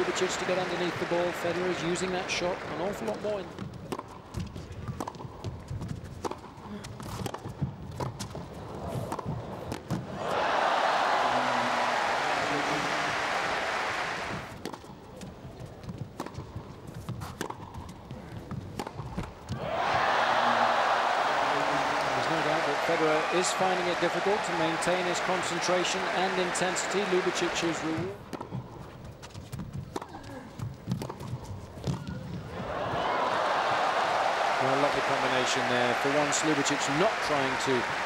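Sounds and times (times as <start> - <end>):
crowd applause: 0.0 - 3.2, 10.2 - 14.6, 19.6 - 28.0, 32.5 - 38.0
ball bouncing on court: 29.3 - 33.1.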